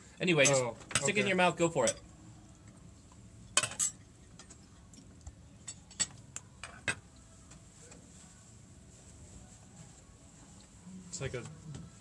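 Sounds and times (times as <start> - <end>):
cutlery and dishes clinking: 0.4 - 2.1, 3.6 - 4.6, 5.6 - 7.0.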